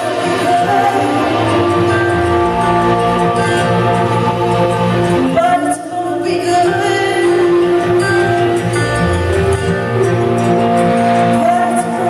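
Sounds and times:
acoustic guitar: 0.0 - 12.0
drums: 0.0 - 12.0
woman singing long notes: 0.0 - 12.0
steady bass: 0.1 - 5.6.

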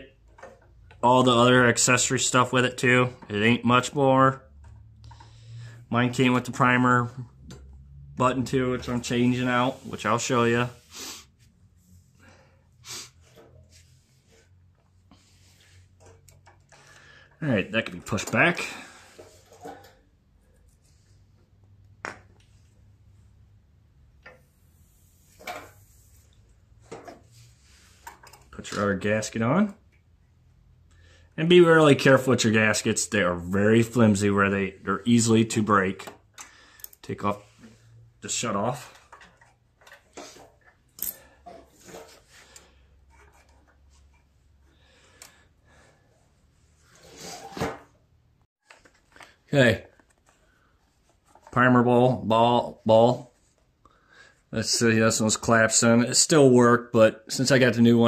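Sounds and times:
clicks and taps of parts: 36.0 - 37.0.

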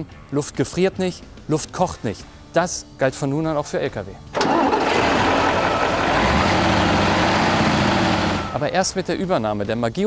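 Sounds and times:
cooling fan rushing: 4.4 - 8.7
diesel truck engine running: 4.4 - 8.8.

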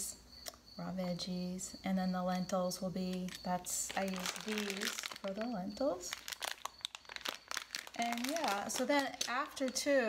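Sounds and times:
plastic bag crinkling: 3.0 - 10.0.

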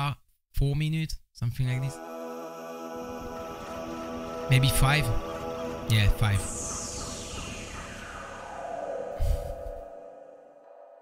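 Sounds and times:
synth drone with falling sweep: 1.8 - 11.0.

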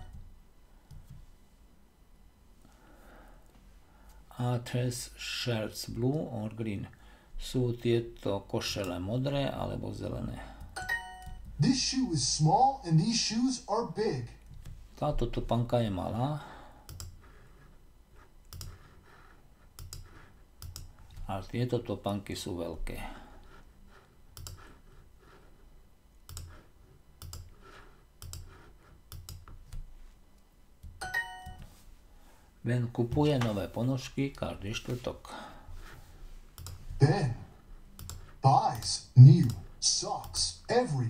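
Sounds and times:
person speaking: 11.5 - 16.6, 32.6 - 35.6, 36.9 - 37.6, 38.2 - 41.0
computer mouse clicks: 16.9 - 17.2, 18.4 - 18.8, 19.7 - 21.3, 24.3 - 24.7, 26.2 - 26.6, 27.2 - 27.5, 28.2 - 29.9, 36.6 - 36.8, 38.0 - 39.6.

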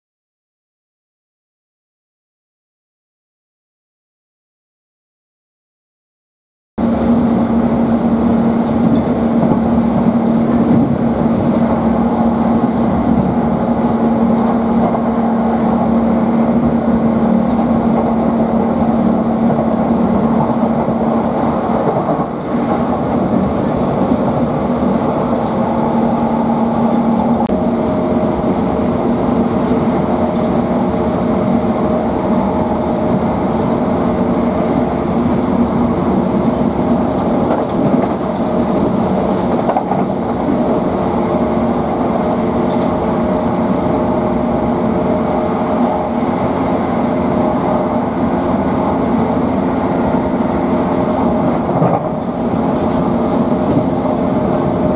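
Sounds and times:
electric train humming: 6.8 - 54.9
train wheel and rail rumble: 6.8 - 54.9.

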